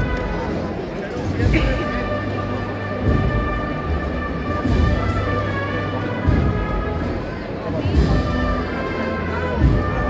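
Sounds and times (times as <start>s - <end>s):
brass band playing a march: 0.0s - 10.0s.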